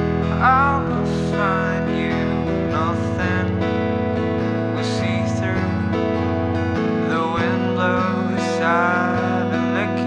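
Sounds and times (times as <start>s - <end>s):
acoustic guitar strumming: 0.0s - 10.0s
person singing: 0.1s - 6.1s, 6.9s - 10.0s.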